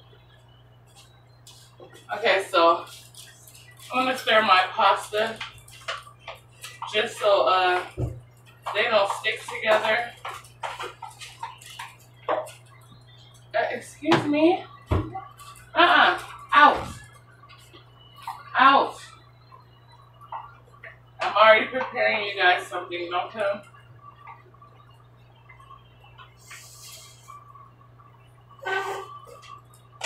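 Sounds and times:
steady low hum: 0.0 - 30.0
indistinct voices talking: 2.0 - 30.0.

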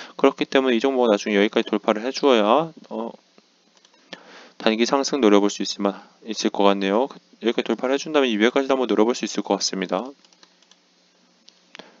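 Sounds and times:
low steady hiss: 0.0 - 12.0
faint computer clicks: 3.7 - 4.2, 10.0 - 10.8.

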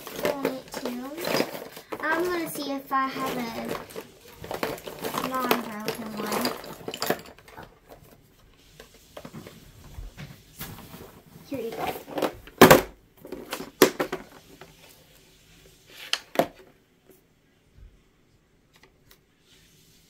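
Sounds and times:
crayons rattling in plastic tub: 0.0 - 9.8, 10.8 - 14.9.

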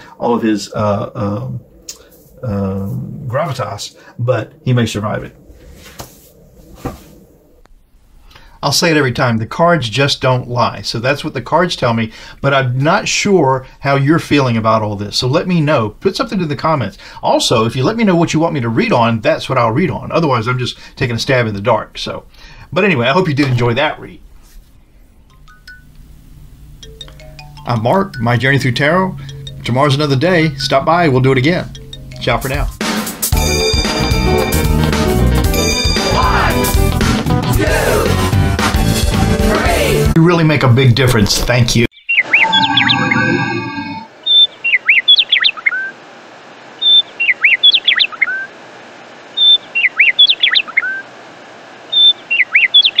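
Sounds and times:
low steady hum: 0.0 - 32.8
held musical chord: 26.7 - 36.9
birdsong whistle and chirps: 41.9 - 46.0, 46.8 - 48.5, 49.3 - 51.1, 51.9 - 53.0
chime notes: 42.3 - 44.1.

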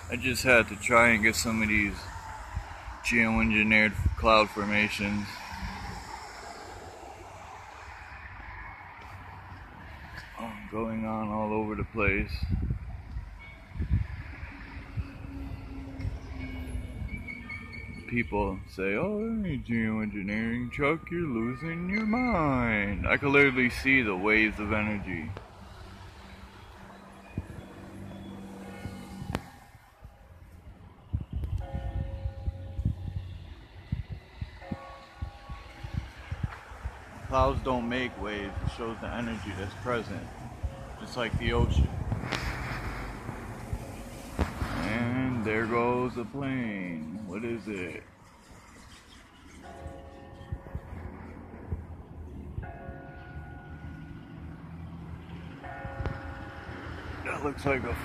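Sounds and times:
traffic engine hum: 0.0 - 58.0
passenger plane passing overhead: 5.3 - 10.4.

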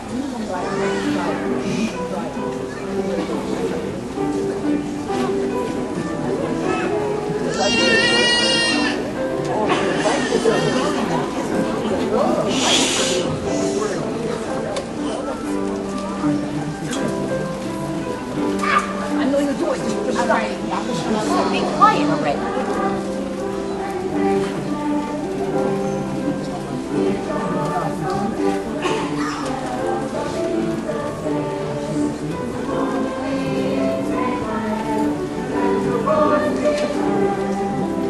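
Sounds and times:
chorus singing sustained notes: 21.1 - 38.0.

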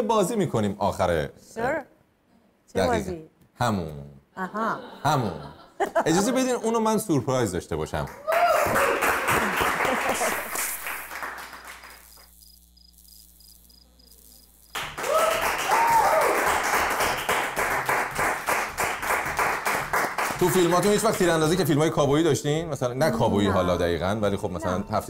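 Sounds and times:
audience applauding: 8.1 - 12.1, 14.7 - 21.6
audience shouts: 15.0 - 16.5.

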